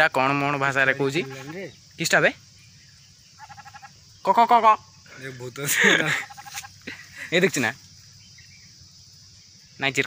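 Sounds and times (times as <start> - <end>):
quavering bleat: 1.2 - 1.6, 3.4 - 3.9.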